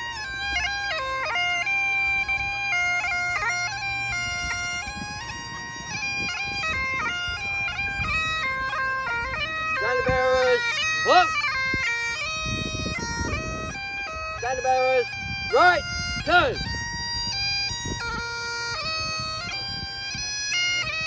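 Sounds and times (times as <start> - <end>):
bagpipe playing a march: 0.0 - 21.0
person calling out: 9.8 - 11.4, 14.4 - 15.8.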